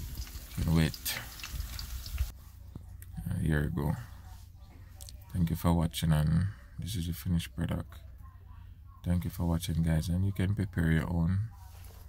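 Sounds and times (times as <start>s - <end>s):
fritters sizzling in hot oil: 0.0s - 2.4s.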